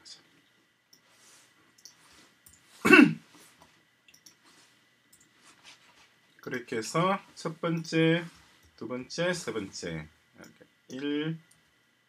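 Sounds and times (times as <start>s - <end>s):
faint mouse clicks: 1.8s - 2.6s, 4.1s - 4.4s.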